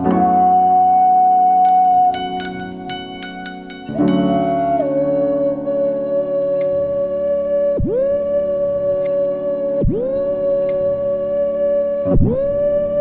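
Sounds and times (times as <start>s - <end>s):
looped electronic tone swooping: 0.0s - 13.0s.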